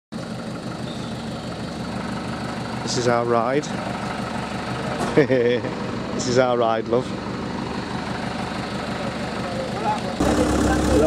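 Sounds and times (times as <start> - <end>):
truck engine idling: 0.2 - 11.0.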